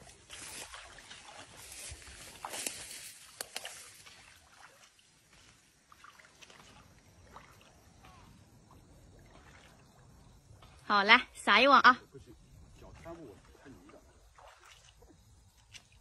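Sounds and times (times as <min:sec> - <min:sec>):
water sloshing: 0:00.0 - 0:16.0
water splashes: 0:00.0 - 0:16.0.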